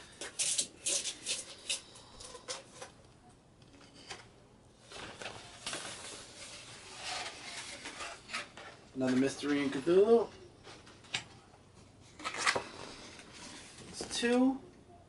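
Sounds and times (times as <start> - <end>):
paper rustling: 4.8 - 9.9.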